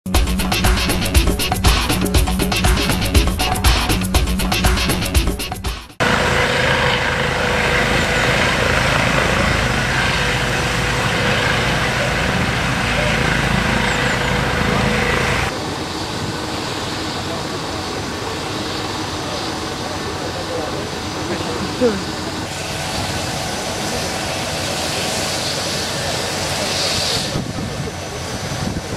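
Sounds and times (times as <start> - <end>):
helicopter hovering: 0.1 - 28.9.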